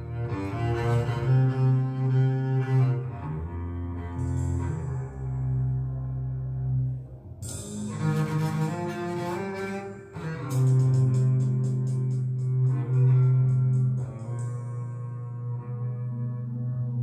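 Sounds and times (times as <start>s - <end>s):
low bowed strings: 0.0s - 17.0s.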